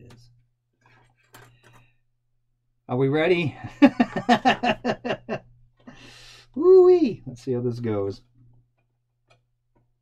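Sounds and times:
man laughing: 3.6 - 5.4.

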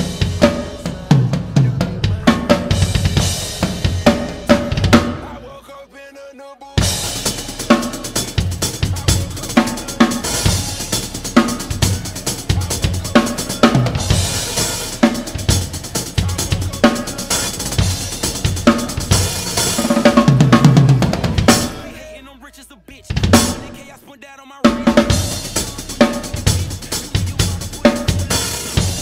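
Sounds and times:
acoustic drum kit groove: 0.0 - 5.4, 6.8 - 22.2, 22.9 - 29.0.

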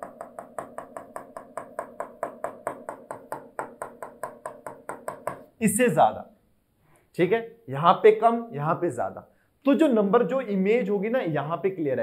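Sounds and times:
stylus tapping on a screen: 0.0 - 5.5.

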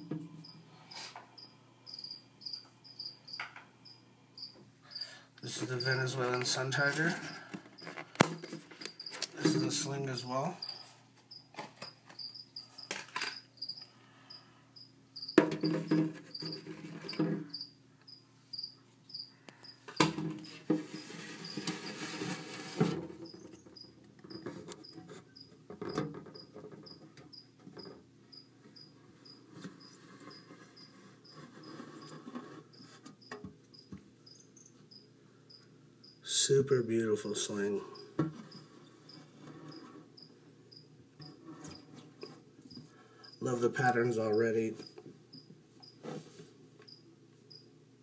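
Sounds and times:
cricket chirping: 0.4 - 9.9, 10.5 - 21.7, 23.2 - 25.5, 26.3 - 31.4, 32.7 - 36.2, 38.0 - 41.9, 42.7 - 43.4, 44.8 - 46.0, 46.9 - 47.7
plastic containers knocking: 15.4 - 17.5.

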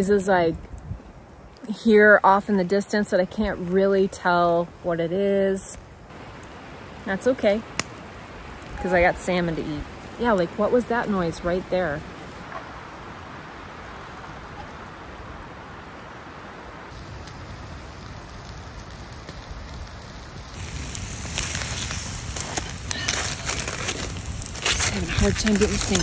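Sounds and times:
campfire crackling: 0.0 - 26.0
wind rushing hiss: 11.8 - 26.0.

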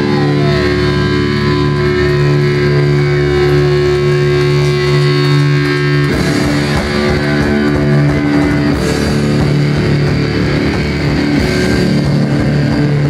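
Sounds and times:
gliding feedback whines: 0.0 - 13.0
guitar amplifier drone with feedback: 0.0 - 13.0.

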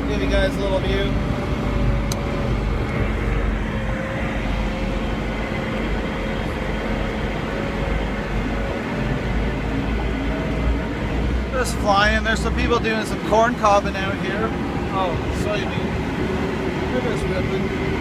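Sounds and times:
backhoe engine rumbling with whine: 0.0 - 18.0.

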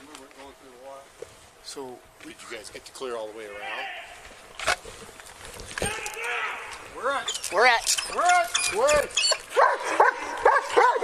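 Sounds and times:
dog barking short high barks: 9.6 - 11.0.

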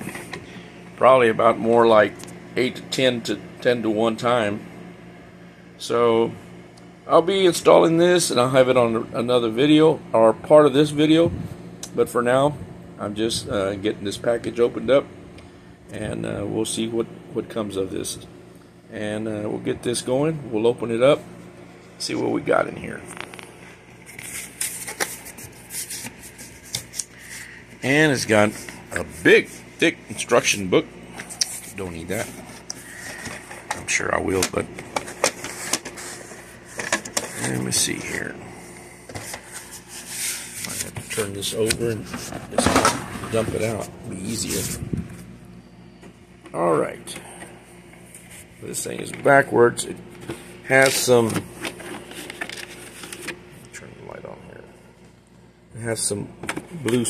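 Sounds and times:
faint steady hum: 0.0 - 57.0
cardboard rustling and scraping: 24.0 - 27.5, 31.2 - 38.1, 39.1 - 45.2.

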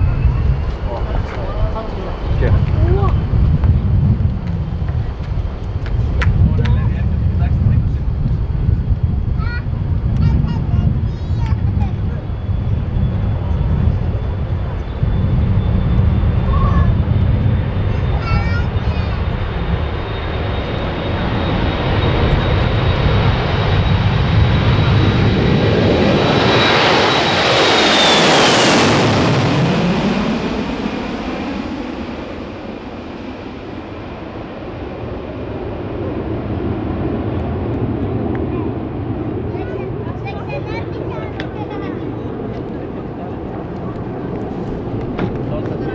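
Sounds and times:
jet airliner taking off: 0.0 - 45.9.

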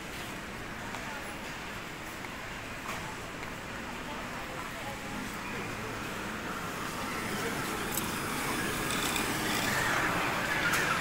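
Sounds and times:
supermarket hum and hiss: 0.0 - 11.0.

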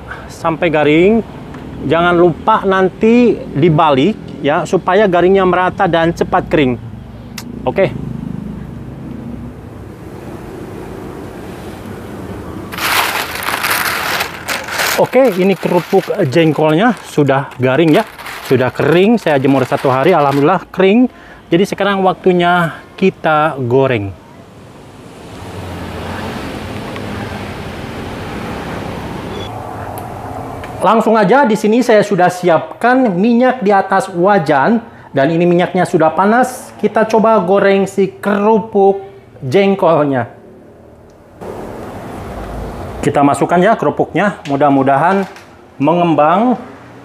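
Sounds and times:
dry crackers rattling on a tray: 12.7 - 20.7.

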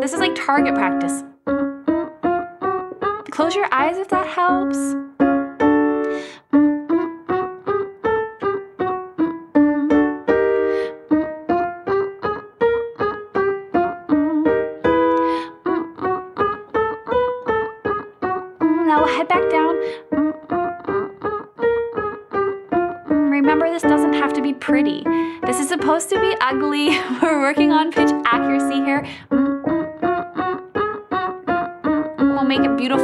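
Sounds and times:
staccato digital piano notes: 0.0 - 33.0
woman humming: 9.1 - 10.2, 13.9 - 17.2, 18.6 - 22.3, 27.0 - 33.0.

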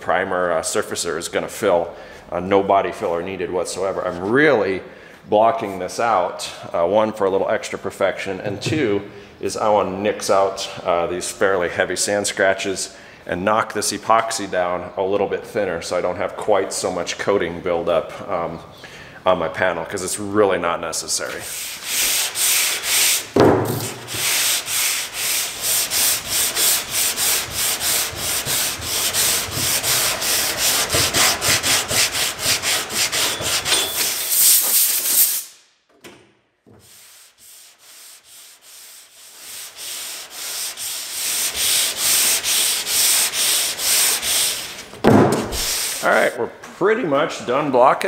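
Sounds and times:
sanding block scrubbing on metal: 21.3 - 35.4, 36.8 - 44.8, 45.5 - 46.3.

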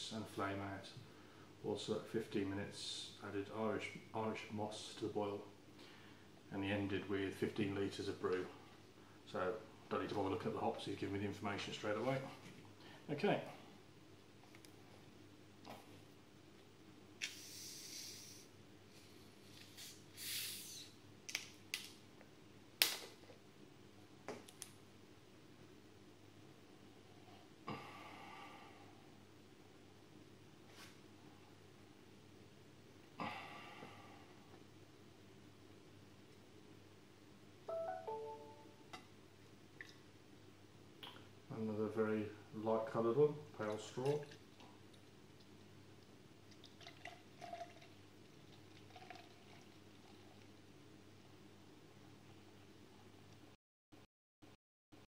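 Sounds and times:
carbonation hiss: 17.2 - 21.0
beer pouring into a glass: 46.5 - 50.6.

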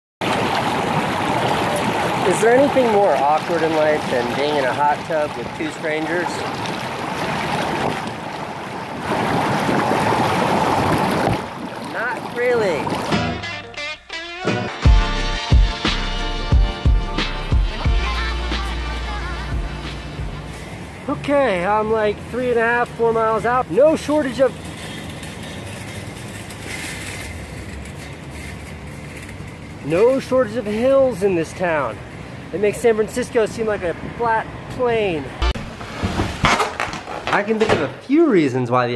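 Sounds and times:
city street traffic: 0.2 - 8.9, 17.2 - 37.3
hot tub jets churning water: 0.2 - 13.2.

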